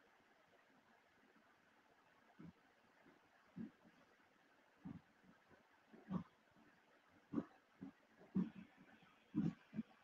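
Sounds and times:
faint low vocal noises: 2.2 - 10.0.

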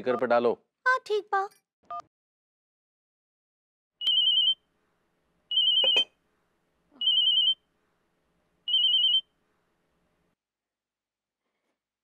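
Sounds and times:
telephone ringing: 4.1 - 4.6, 5.5 - 6.1, 7.0 - 7.6, 8.7 - 9.3.

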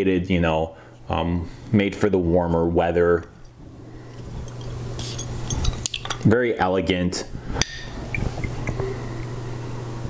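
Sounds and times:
glass bottle and cap clinking: 4.4 - 6.2.

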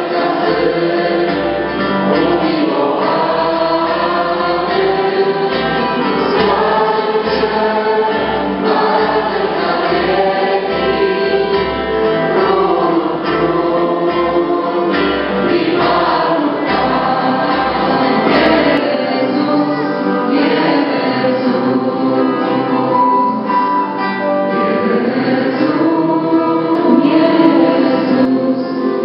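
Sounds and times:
group singing a worship song: 0.0 - 29.0.

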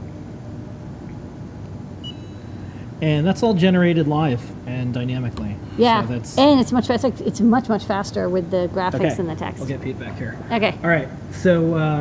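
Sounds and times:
low room hum: 0.0 - 12.0
faint high-pitched beep: 2.0 - 2.7.

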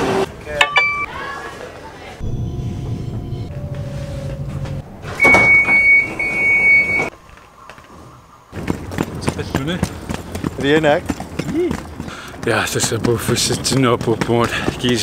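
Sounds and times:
train door signal beep: 0.6 - 1.1, 2.3 - 7.1
train rumbling: 2.2 - 15.0.

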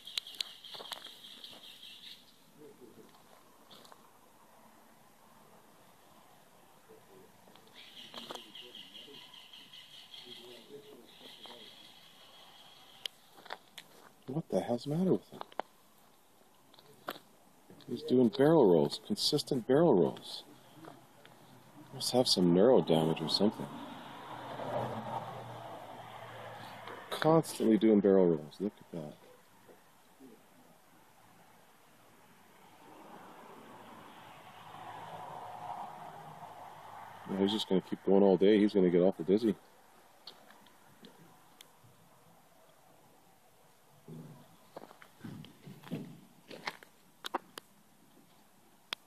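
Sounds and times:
footsteps on gravel: 0.2 - 1.8, 13.2 - 14.2, 44.7 - 47.4.

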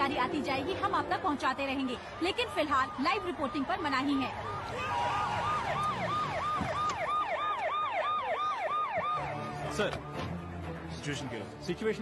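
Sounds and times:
emergency siren wailing: 1.5 - 10.7.

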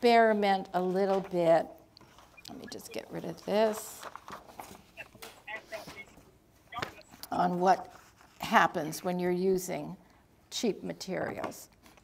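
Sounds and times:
paper and card rustling: 3.2 - 6.2, 6.8 - 8.9.

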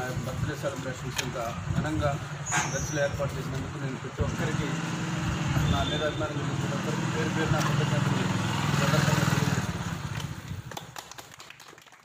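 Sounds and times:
man talking: 0.0 - 4.9, 5.5 - 9.8
people clapping: 10.1 - 12.0.

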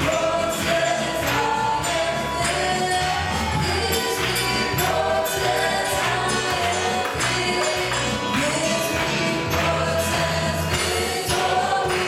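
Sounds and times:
gospel band playing: 0.0 - 12.0
jingling beat: 0.0 - 12.0
voices singing along: 0.0 - 12.0.

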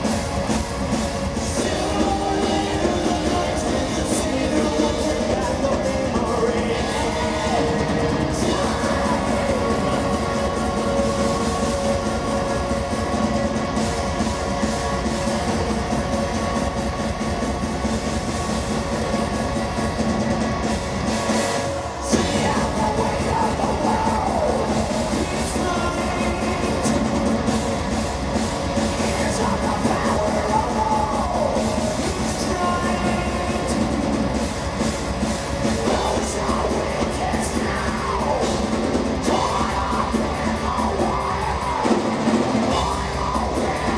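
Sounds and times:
live metal band playing: 0.0 - 43.9
man singing: 1.3 - 13.5, 22.0 - 27.5, 28.8 - 34.4, 35.6 - 43.9.

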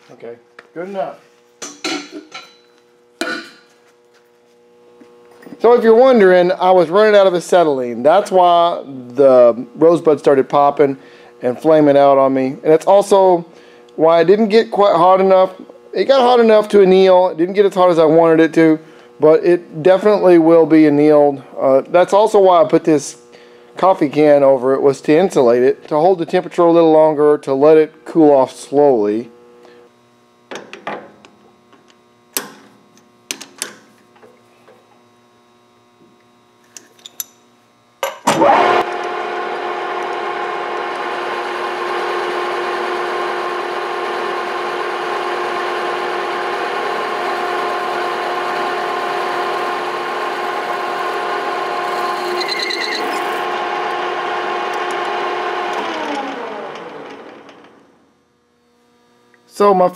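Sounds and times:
lathe running hum: 38.2 - 59.9
lathe spindle spinning down: 38.3 - 58.1.

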